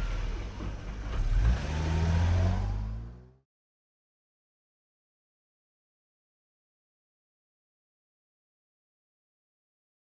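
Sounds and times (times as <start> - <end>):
car engine accelerating: 0.0 - 3.5.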